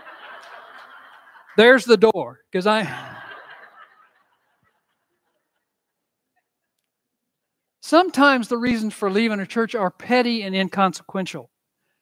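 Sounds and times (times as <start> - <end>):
faint laughter: 2.8 - 6.7.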